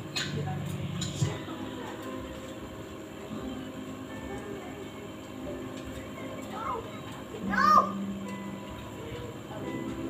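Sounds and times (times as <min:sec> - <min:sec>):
child calling out: 0:07.4 - 0:08.0.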